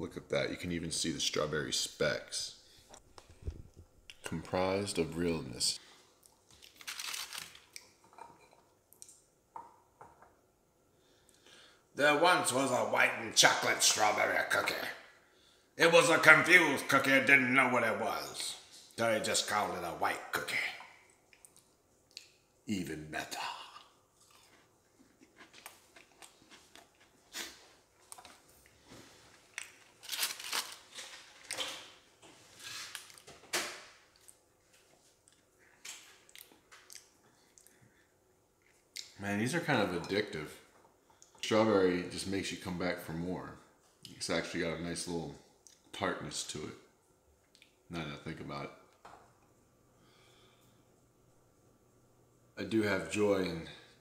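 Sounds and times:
person chewing crisp cookie: 0:23.6 - 0:30.6
plastic tray crinkling: 0:29.6 - 0:31.6.

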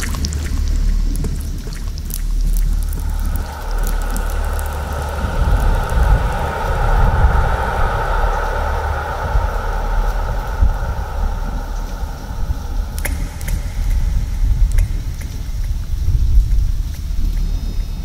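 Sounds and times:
deep low rumble: 0:00.0 - 0:18.0.

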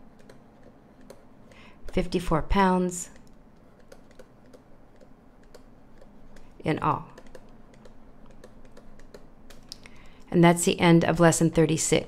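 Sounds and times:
stylus tapping on tablet: 0:03.1 - 0:10.1.

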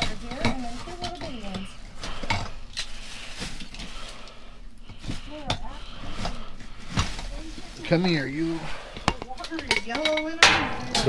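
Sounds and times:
objects knocking in metal dumpster: 0:10.4 - 0:11.0.

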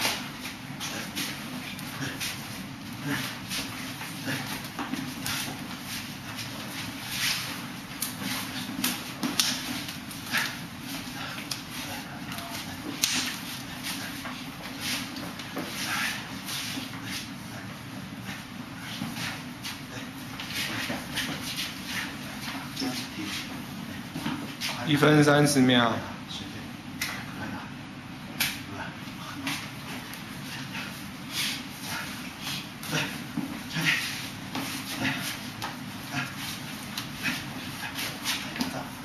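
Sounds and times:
heavy breathing: 0:00.0 - 0:24.9, 0:28.6 - 0:39.0
slaps of forearms and hands: 0:08.0 - 0:10.6, 0:11.4 - 0:11.7, 0:12.3 - 0:14.0, 0:27.0 - 0:27.3, 0:28.4 - 0:28.7.

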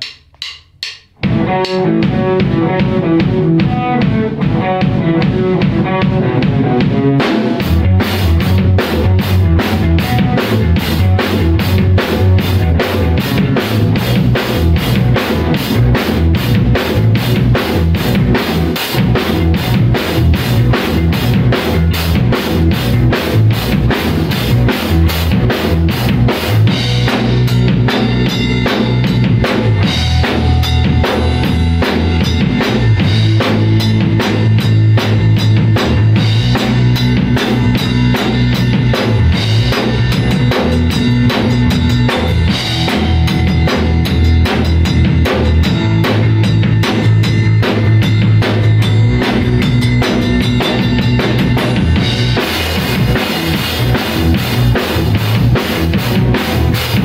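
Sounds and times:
drum kit beat: 0:00.0 - 0:57.0
bass guitar low notes: 0:01.1 - 0:57.0
electric guitar playing: 0:01.2 - 0:57.0.

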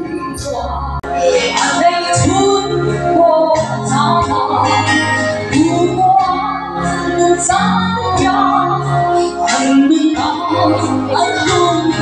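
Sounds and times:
woman singing amplified: 0:00.0 - 0:12.0.

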